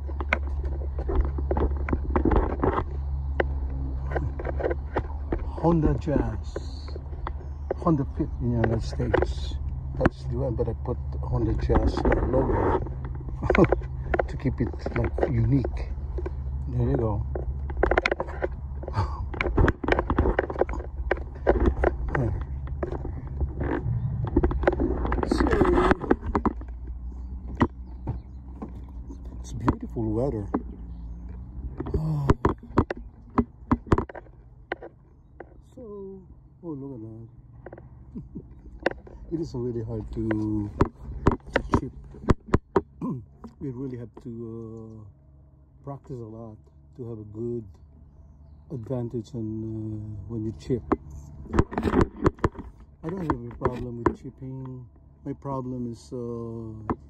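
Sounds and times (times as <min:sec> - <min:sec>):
low hum: 0:00.0 - 0:57.0
person speaking: 0:05.4 - 0:07.1, 0:07.7 - 0:12.8, 0:13.4 - 0:17.3, 0:18.9 - 0:19.6, 0:21.9 - 0:22.6, 0:25.1 - 0:26.4, 0:29.3 - 0:30.6, 0:31.8 - 0:32.8, 0:39.2 - 0:42.0, 0:43.0 - 0:45.1, 0:53.0 - 0:57.0.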